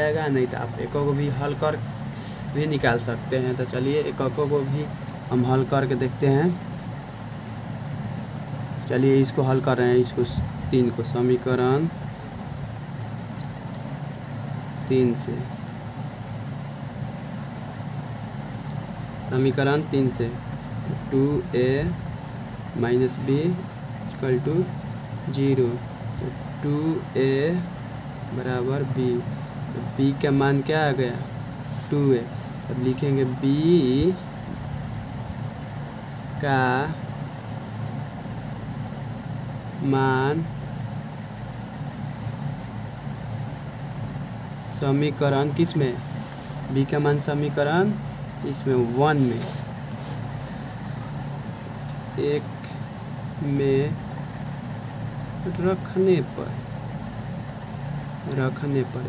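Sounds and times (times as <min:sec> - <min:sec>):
low mechanical hum: 0:00.0 - 0:59.0.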